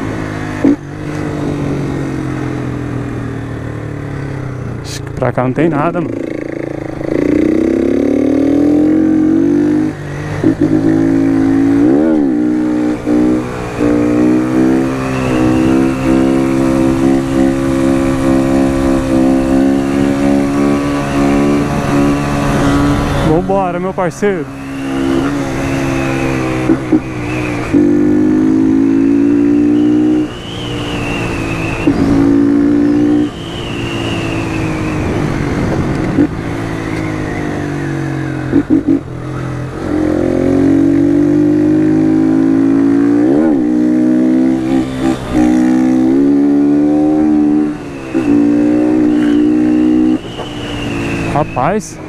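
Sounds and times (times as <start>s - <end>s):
motorcycle engine revving: 0.0s - 52.0s.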